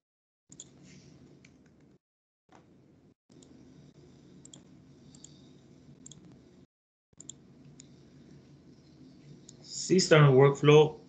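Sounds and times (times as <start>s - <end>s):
low steady background hum: 0.6s - 11.0s
computer mouse clicks: 4.4s - 6.4s, 7.2s - 8.4s.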